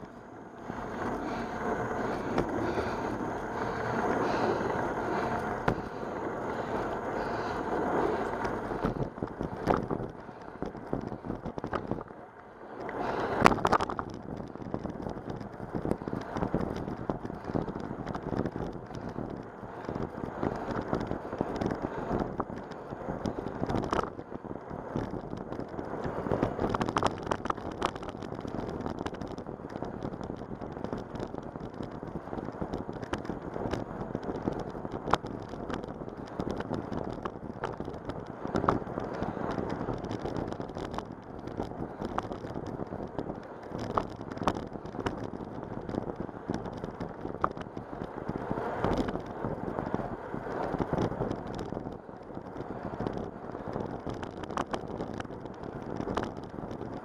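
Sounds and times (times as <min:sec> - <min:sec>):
bicycle clicks and rattles: 0:00.0 - 0:57.0
wind rushing over microphone: 0:00.0 - 0:57.0.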